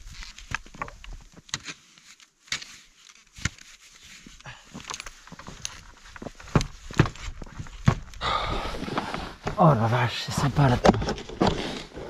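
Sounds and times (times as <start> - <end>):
snowshoe buckles clicking and knocking: 0.0 - 12.0.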